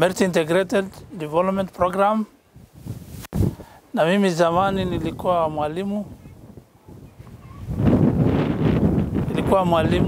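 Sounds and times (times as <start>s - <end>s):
wind buffeting microphone: 0.8s - 10.0s.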